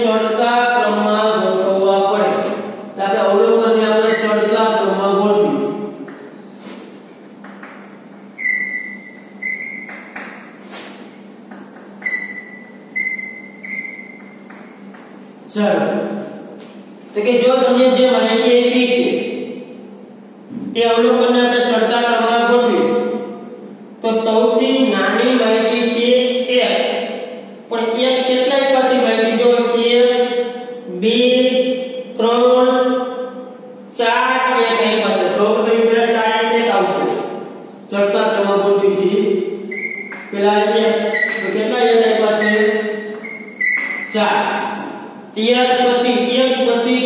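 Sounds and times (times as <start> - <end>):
chalk squeaking on chalkboard: 4.1 - 4.5, 8.4 - 10.9, 39.7 - 44.2.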